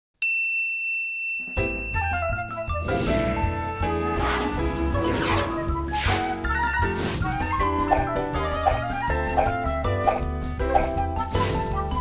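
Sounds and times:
sharp high bell ding: 0.2 - 2.8.

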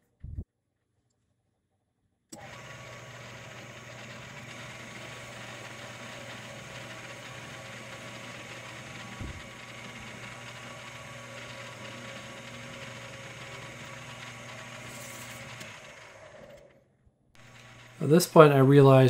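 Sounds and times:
lathe motor whirring: 2.4 - 16.8, 17.4 - 19.0
light turning cuts: 17.4 - 19.0.

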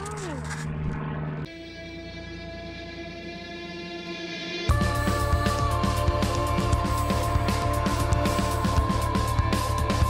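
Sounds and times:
background music: 1.5 - 10.0.

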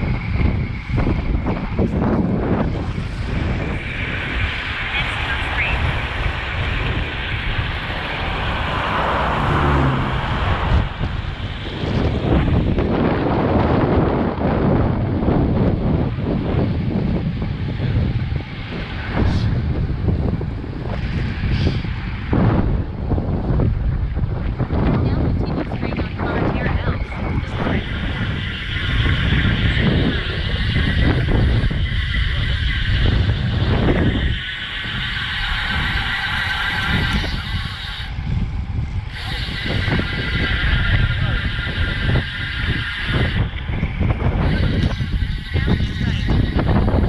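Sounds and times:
wind rushing over microphone: 0.0 - 47.0.

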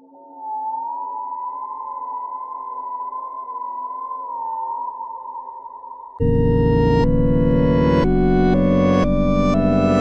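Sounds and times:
faint low drone: 6.2 - 10.0.

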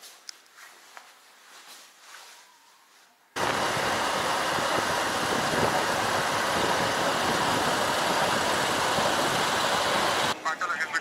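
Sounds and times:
motorcycle engine and road noise: 3.4 - 10.4
wind on microphone: 3.4 - 10.4.

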